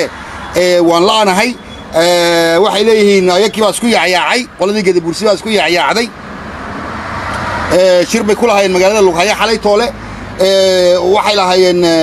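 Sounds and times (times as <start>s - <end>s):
man talking: 0.0s - 6.2s, 7.7s - 12.0s.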